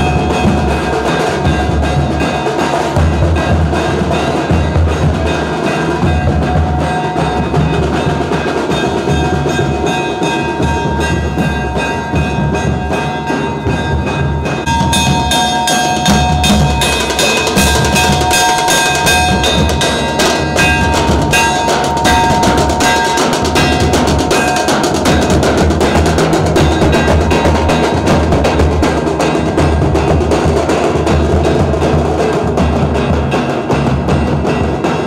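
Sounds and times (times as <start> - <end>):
metal cylinder struck ringing: 0.0 - 30.2
drums beaten fast: 0.0 - 35.0.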